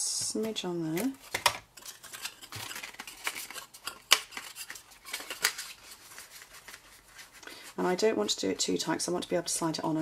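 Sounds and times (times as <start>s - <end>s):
paper rustling and scraping: 1.0s - 8.4s.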